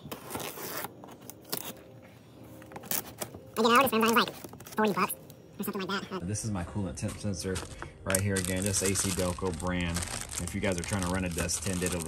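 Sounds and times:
knife cutting packing tape: 0.1 - 1.8.

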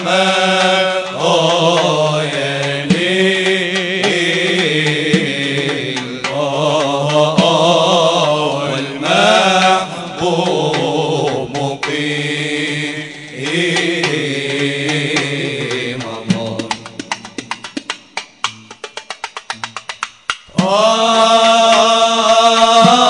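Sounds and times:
drum beating: 0.0 - 23.0
men chanting melodically: 0.0 - 23.0.

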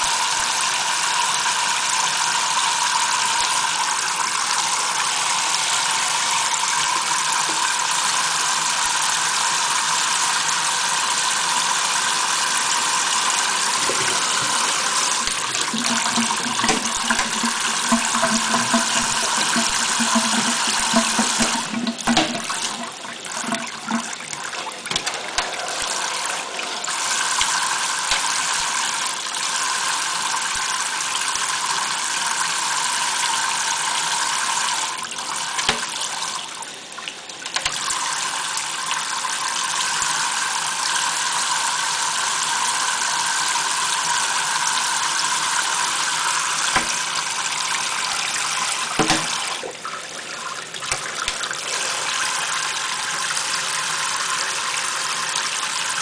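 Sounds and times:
faucet spray splashing into sink: 12.8 - 24.1, 46.6 - 47.3, 48.9 - 49.6.

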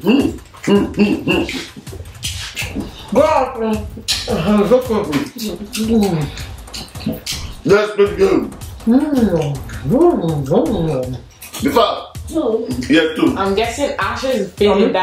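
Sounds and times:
people humming with full mouths: 0.0 - 3.2, 3.9 - 7.6
chewing clicks and smacks: 0.1 - 3.1, 5.1 - 7.6, 11.2 - 11.7.

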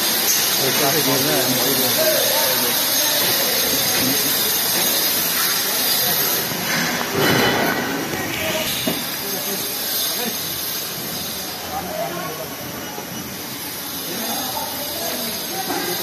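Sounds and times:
construction site hiss: 0.0 - 16.0.

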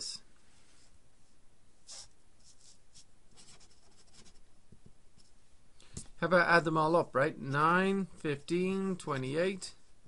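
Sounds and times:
felt-tip marker writing on paper: 1.9 - 4.4.

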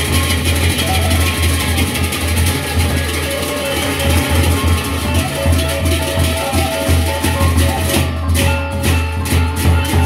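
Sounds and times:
short melodic line: 0.0 - 10.0.

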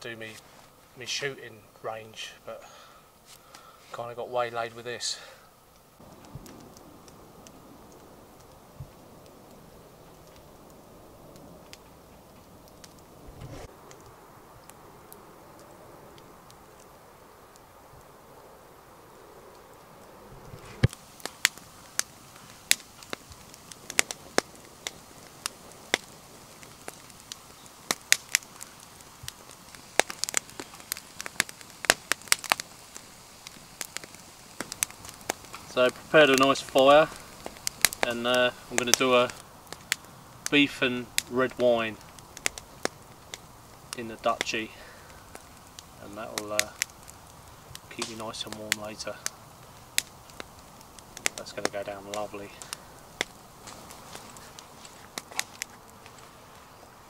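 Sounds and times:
campfire crackling and popping: 0.0 - 57.0
faint background hiss: 0.0 - 57.0.

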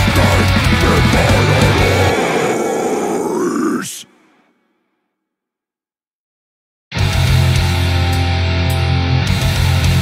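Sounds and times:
guttural vocal growl: 0.0 - 4.5.

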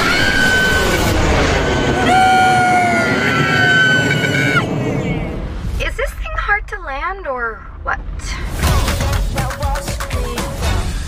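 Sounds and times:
high held scream: 0.0 - 4.7
jet engine taking off: 0.0 - 6.0.

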